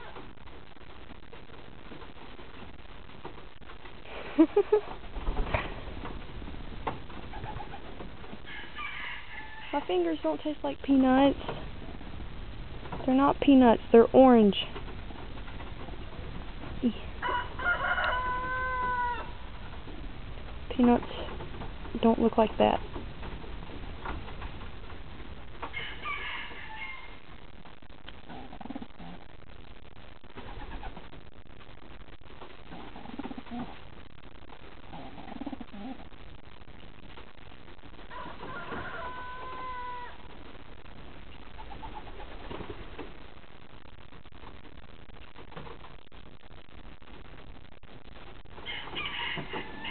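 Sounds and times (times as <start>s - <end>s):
low background hiss: 0.0s - 49.9s
pigeons making soft low calls: 7.2s - 9.9s, 28.2s - 29.3s, 32.6s - 33.8s, 34.9s - 36.2s, 41.4s - 42.8s
pigeon cooing: 28.3s - 29.3s, 32.7s - 33.8s, 34.9s - 36.1s.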